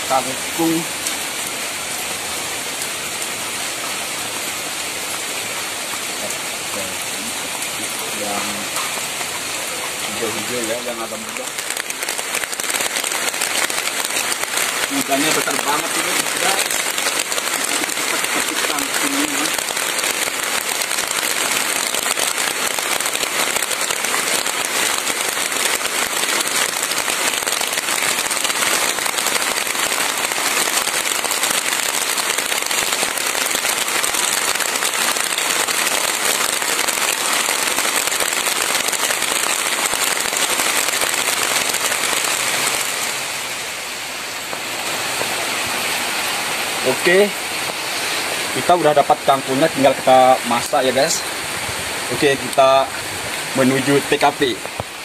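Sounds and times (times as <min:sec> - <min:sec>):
steady rain on leaves: 0:00.0 - 0:55.0.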